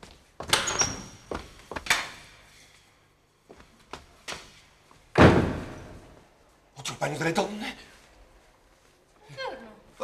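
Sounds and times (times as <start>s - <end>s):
door slamming shut: 5.1s - 6.1s.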